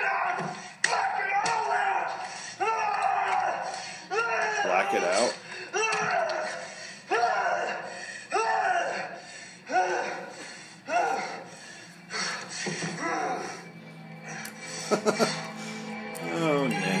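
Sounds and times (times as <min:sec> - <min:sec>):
film music: 0:00.0 - 0:17.0.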